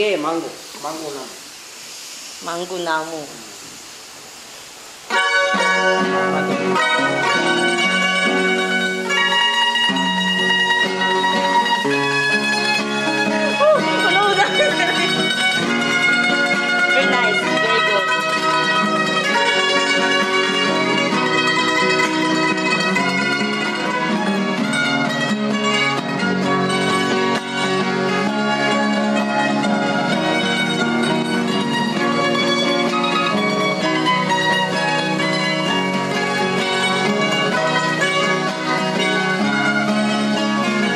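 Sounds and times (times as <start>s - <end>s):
classical guitar chords: 5.1s - 40.9s
plucked lute melody: 5.1s - 40.9s.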